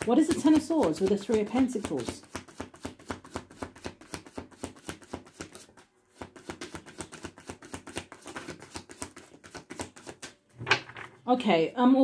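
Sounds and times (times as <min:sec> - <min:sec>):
cards being shuffled: 0:00.0 - 0:10.4.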